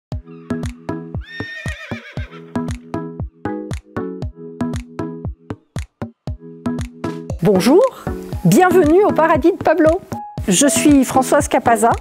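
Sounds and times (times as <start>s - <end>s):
music with steady drum beat: 0.6s - 12.0s
horse whinnying: 1.2s - 2.7s.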